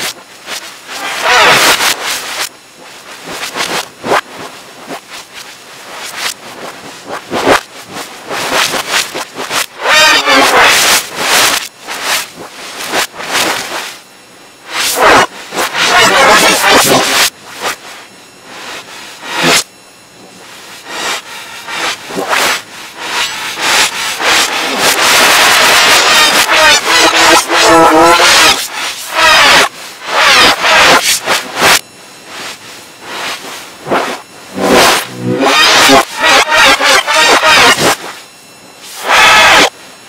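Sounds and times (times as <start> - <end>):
distorted reversed yelling: 14.6 - 31.8, 32.4 - 39.7.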